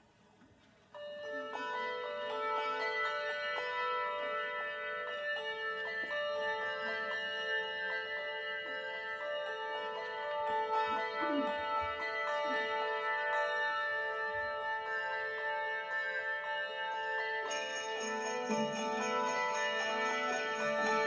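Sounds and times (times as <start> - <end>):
handbell choir ringing chords: 1.0 - 21.0.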